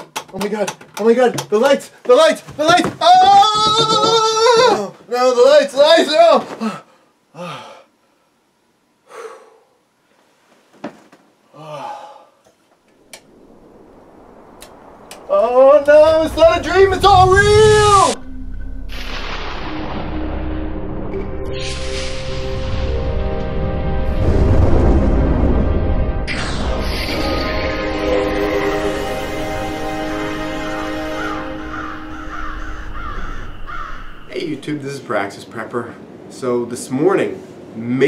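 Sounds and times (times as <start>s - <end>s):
faint room hiss: 0.0s - 18.3s, 33.5s - 38.0s
intro music held tones: 15.9s - 33.5s.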